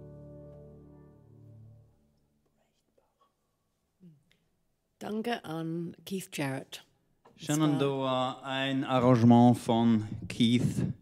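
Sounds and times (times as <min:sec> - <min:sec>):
piano chord ringing: 0:00.0 - 0:01.9.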